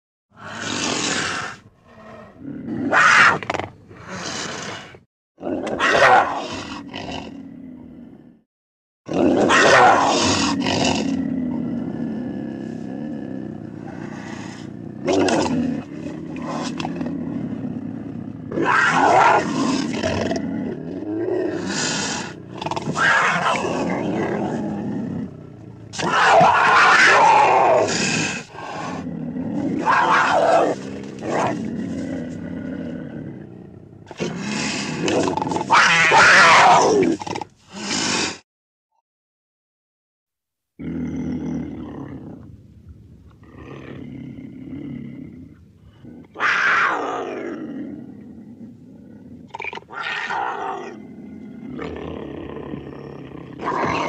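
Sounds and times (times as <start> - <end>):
panther roaring and growling: 0.3 - 8.4, 9.1 - 38.4, 40.8 - 42.5, 43.4 - 54.0.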